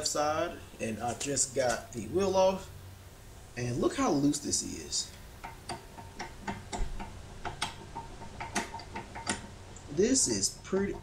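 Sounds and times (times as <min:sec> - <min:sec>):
metal hub clacking: 0:05.0 - 0:11.0.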